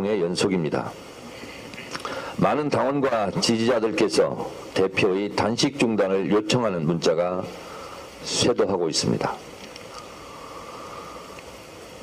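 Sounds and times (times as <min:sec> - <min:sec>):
background hiss: 0:00.0 - 0:12.0
faint hum: 0:00.0 - 0:12.0.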